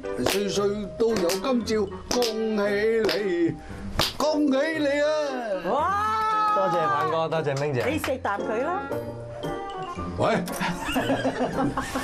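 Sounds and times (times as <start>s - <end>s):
background music: 0.0s - 12.0s
group of people laughing: 10.5s - 12.0s.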